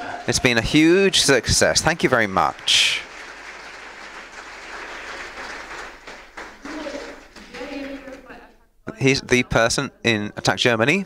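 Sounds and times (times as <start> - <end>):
audience applause: 0.0 - 8.3.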